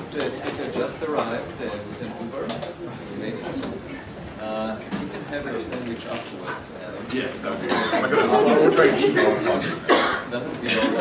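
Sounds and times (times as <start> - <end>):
low murmuring voices: 0.0 - 11.0.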